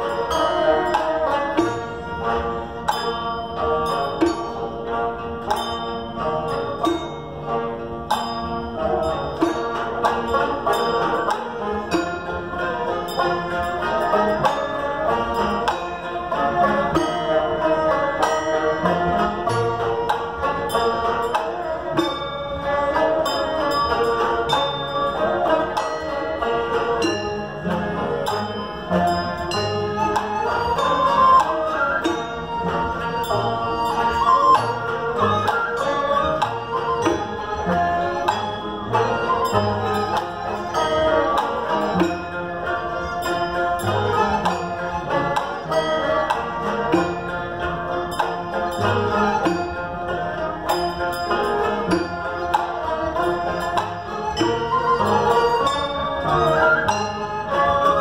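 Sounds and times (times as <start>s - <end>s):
bowed fiddles: 0.0s - 58.0s
plucked lutes: 0.0s - 58.0s
zither plucking: 0.0s - 58.0s.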